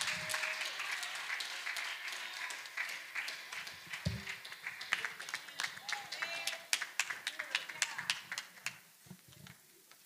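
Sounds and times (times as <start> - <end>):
audience clapping: 0.0 - 10.0.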